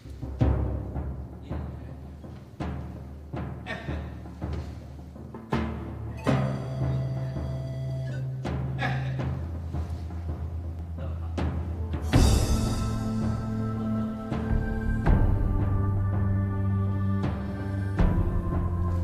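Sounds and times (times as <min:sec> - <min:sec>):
deep drum-like strikes: 0:00.0 - 0:19.0
held higher note: 0:06.2 - 0:08.6, 0:11.9 - 0:19.0
sustained low notes: 0:09.6 - 0:19.0.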